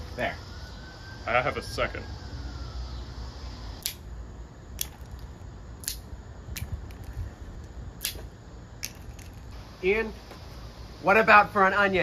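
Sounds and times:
wooden pencils snapping: 3.8 - 4.0, 4.8 - 7.1, 8.0 - 9.4.

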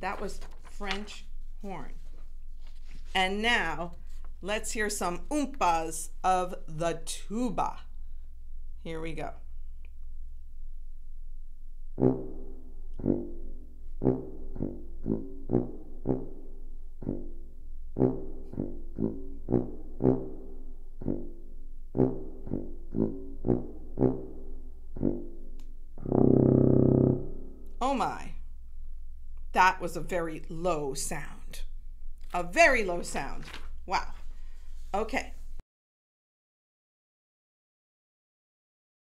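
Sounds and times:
tuba playing oompah notes: 12.0 - 27.8.

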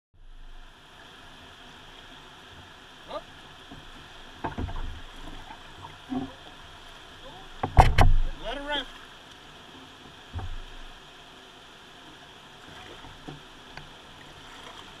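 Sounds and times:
paddle splashing in water: 1.8 - 9.2, 12.0 - 15.0
paddle knocks: 3.6 - 6.4, 7.6 - 8.7, 10.3 - 10.9.

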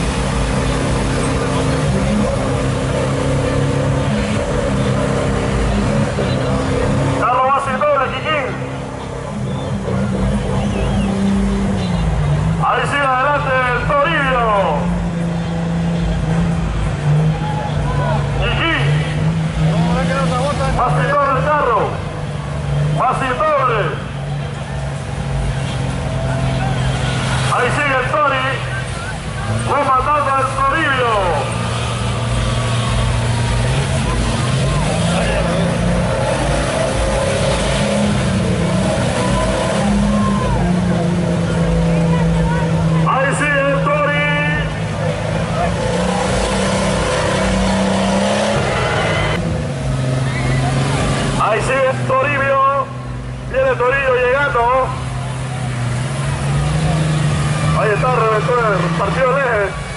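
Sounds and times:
off-road vehicle engine revving: 0.0 - 59.9.

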